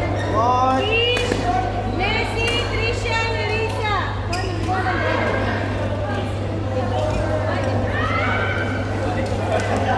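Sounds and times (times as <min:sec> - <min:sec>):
chatter in indoor hall: 0:00.0 - 0:09.9.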